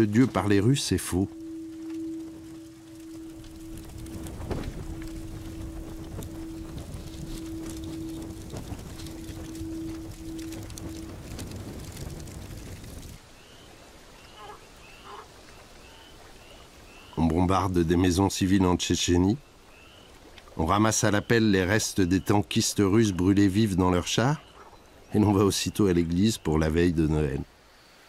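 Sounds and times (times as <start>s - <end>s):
steady held tone: 0.0s - 12.8s
flames crackling: 0.0s - 17.4s
outdoor ambience: 0.0s - 28.0s
bird chirps: 13.3s - 17.3s, 20.9s - 26.9s.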